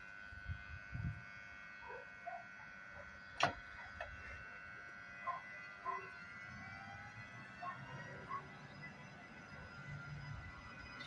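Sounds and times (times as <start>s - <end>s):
electric locomotive whine: 0.0s - 11.0s.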